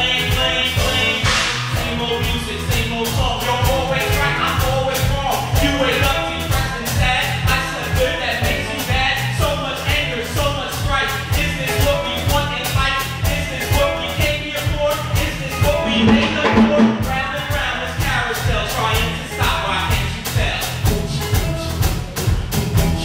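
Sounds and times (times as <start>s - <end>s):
live band music: 0.0s - 23.0s.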